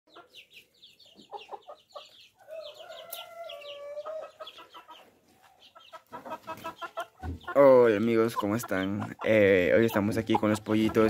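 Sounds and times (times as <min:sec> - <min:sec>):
chicks cheeping: 0:00.1 - 0:11.0
chicks clucking: 0:00.1 - 0:11.0.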